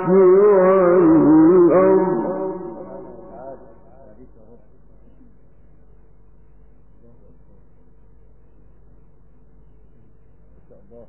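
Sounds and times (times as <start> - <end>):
low recording hum: 0.0 - 11.0
soft indistinct low sounds: 0.0 - 11.0.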